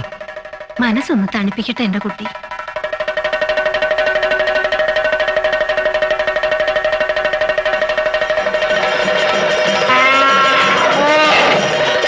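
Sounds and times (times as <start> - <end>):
film music: 0.0 - 12.0
elephant trumpeting: 8.6 - 12.0.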